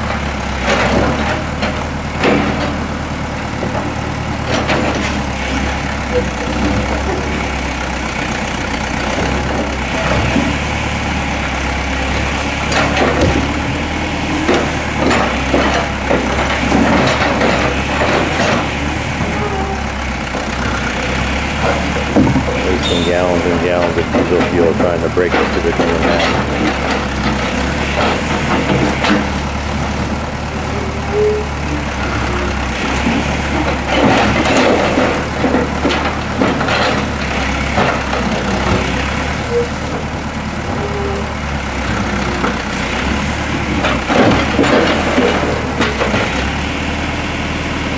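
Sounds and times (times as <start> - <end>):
backhoe engine running: 0.0 - 47.9
steel clanking on concrete: 21.6 - 29.4.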